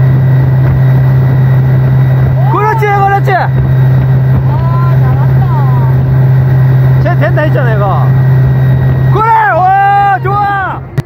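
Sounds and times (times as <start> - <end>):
boat engine droning: 0.0 - 11.0
person shouting and cheering: 2.4 - 3.1, 9.1 - 10.8.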